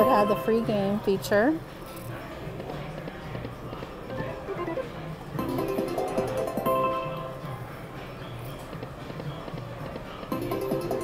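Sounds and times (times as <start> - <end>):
slot machine reel-spin music: 4.1 - 7.5, 10.3 - 11.0.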